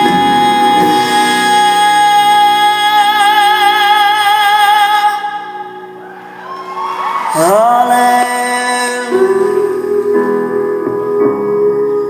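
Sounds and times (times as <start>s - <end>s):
band playing: 0.0s - 4.3s
person singing live: 0.0s - 12.0s.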